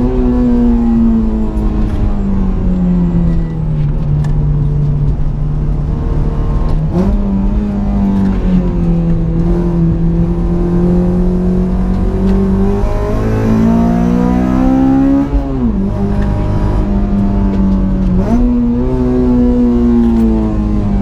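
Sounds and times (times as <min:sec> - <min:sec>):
car engine under hard driving: 0:00.0 - 0:21.0.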